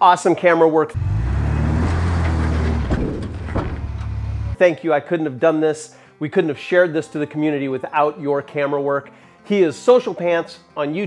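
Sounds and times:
truck engine droning: 0:01.0 - 0:04.6.

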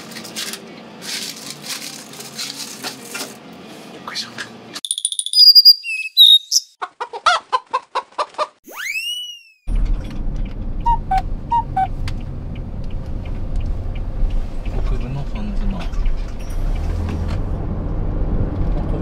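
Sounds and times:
whistled chirps: 0:04.8 - 0:06.8, 0:08.7 - 0:09.7
chicken clucks: 0:06.8 - 0:08.6.

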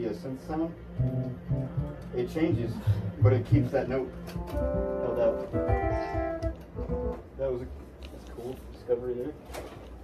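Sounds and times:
synthesizer sustained note: 0:00.0 - 0:07.2.

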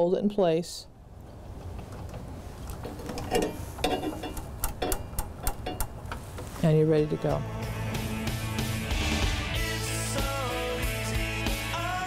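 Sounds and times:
metal clicks and clacks: 0:01.8 - 0:06.2.

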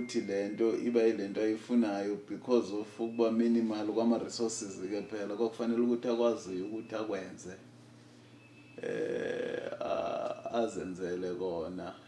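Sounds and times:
man's drawn-out wordless vocal: 0:08.8 - 0:10.6.

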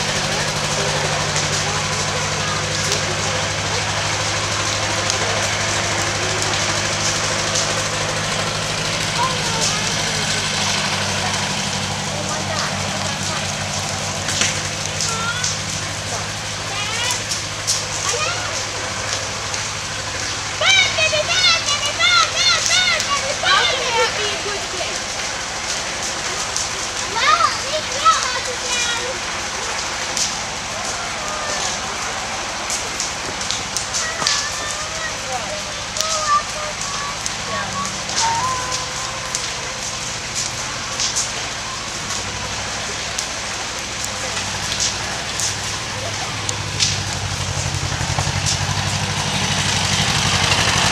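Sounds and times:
faint voices: 0:00.0 - 0:50.9
low engine sound: 0:00.0 - 0:50.9
wood fire crackling: 0:00.0 - 0:50.9.

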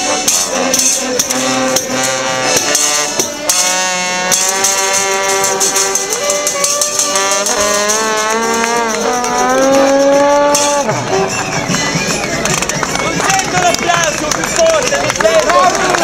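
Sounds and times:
trombone: 0:00.0 - 0:11.9
saxophone: 0:00.0 - 0:12.5
accordion: 0:00.0 - 0:16.0.

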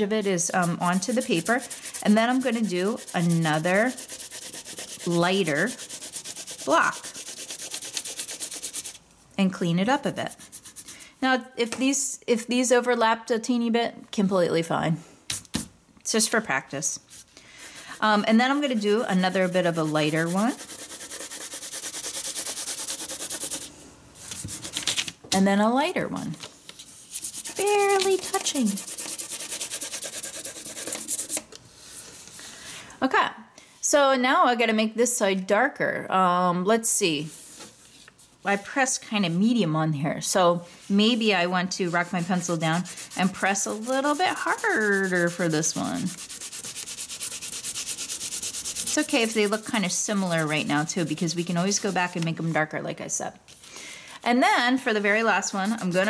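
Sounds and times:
faint rubbing: 0:00.0 - 0:09.0, 0:17.1 - 0:24.6, 0:26.8 - 0:32.4, 0:40.8 - 0:52.5, 0:55.0 - 0:56.0
pencil shading on paper: 0:00.5 - 0:09.0, 0:18.0 - 0:23.7, 0:27.2 - 0:31.4, 0:41.9 - 0:52.2, 0:55.4 - 0:56.0.

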